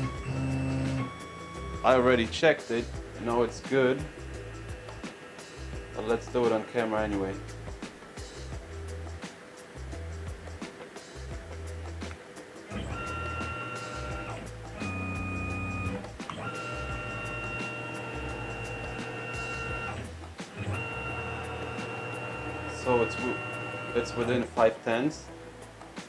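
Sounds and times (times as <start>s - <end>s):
background music: 0.0s - 26.0s
mill axis drive whining: 12.7s - 24.5s.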